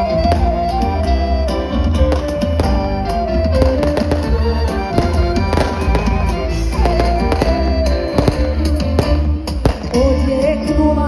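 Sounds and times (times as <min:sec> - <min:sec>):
amplified folk dance music: 0:00.0 - 0:11.0
sharp cracks: 0:03.6 - 0:10.0.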